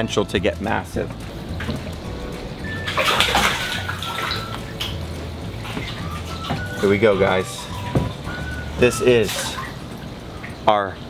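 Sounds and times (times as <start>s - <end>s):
background music: 0.0s - 10.7s
water sloshing in a trough: 1.3s - 10.7s.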